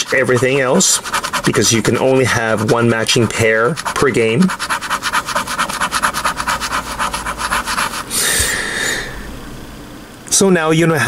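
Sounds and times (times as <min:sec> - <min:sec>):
coin scraping scratch card: 0:00.0 - 0:08.2.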